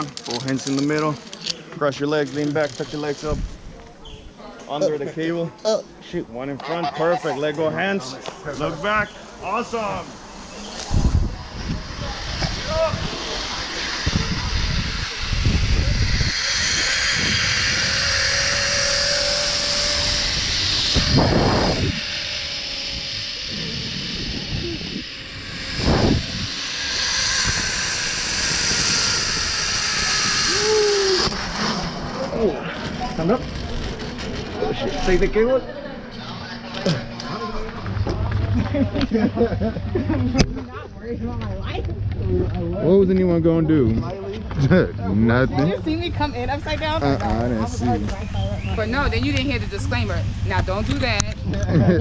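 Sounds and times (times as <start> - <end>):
zip-line trolley whirring: 0.0 - 3.7, 6.7 - 43.0, 44.2 - 52.0
wind rumbling on microphone: 2.8 - 4.4, 8.8 - 35.2, 37.7 - 52.0
person crying out: 30.5 - 31.2.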